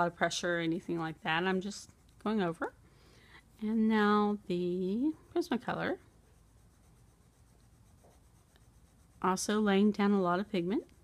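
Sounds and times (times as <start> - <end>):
pencil scratching on paper: 0.0 - 2.7, 4.1 - 11.0.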